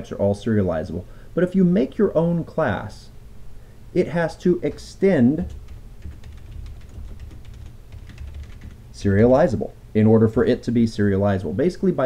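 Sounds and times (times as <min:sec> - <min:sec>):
computer keyboard typing: 0:05.4 - 0:08.8.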